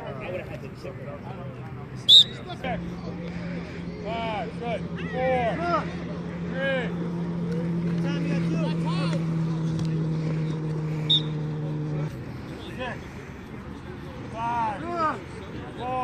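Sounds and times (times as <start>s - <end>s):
players calling and shouting: 0.0s - 16.0s.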